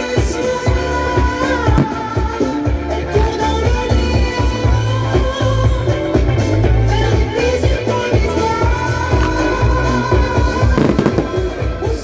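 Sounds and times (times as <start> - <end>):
disco music with steady beat: 0.0 - 12.0
fireworks crackling: 1.6 - 2.6, 10.6 - 12.0.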